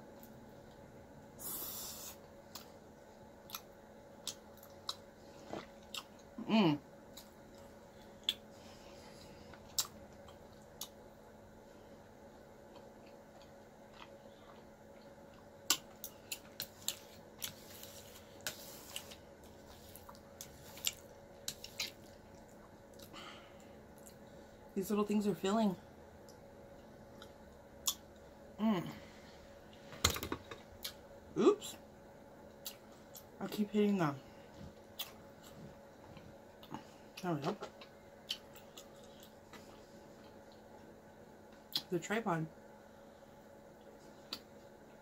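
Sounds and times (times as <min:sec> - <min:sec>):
chewing with wet mouth clicks: 0:03.4 - 0:06.3, 0:07.1 - 0:08.5, 0:09.5 - 0:11.0, 0:12.7 - 0:18.0, 0:18.9 - 0:23.1, 0:26.2 - 0:28.2, 0:32.6 - 0:33.3, 0:34.9 - 0:40.9, 0:43.8 - 0:44.5.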